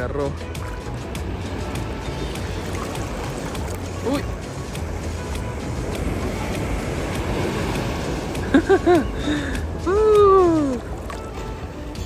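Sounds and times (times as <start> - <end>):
sea water sloshing and rushing: 0.0 - 12.0
man laughing: 8.4 - 10.1.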